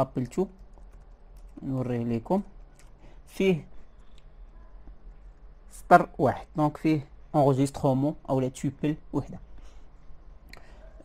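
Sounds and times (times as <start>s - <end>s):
man speaking: 0.0s - 0.6s, 1.6s - 2.6s, 3.3s - 3.7s, 5.7s - 9.5s
computer keyboard typing: 0.0s - 3.0s.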